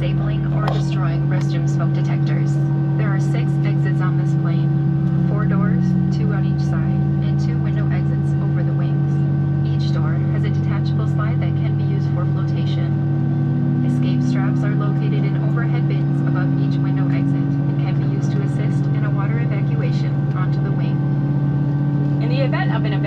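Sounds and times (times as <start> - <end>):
indistinct voices: 0.0 - 13.0, 13.7 - 21.0, 22.1 - 23.0
aircraft cabin engine drone: 0.0 - 23.0.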